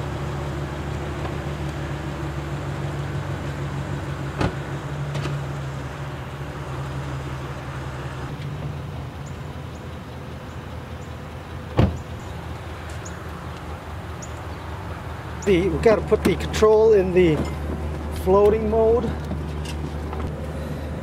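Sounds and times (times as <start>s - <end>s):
truck engine idling: 0.0s - 21.0s
car door shutting: 4.3s - 5.5s, 11.7s - 12.1s.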